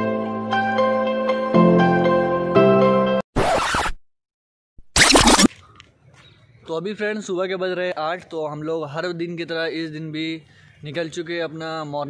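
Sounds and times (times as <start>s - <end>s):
music: 0.0s - 3.2s
rasping zip-like noise: 3.4s - 4.0s, 4.9s - 5.5s.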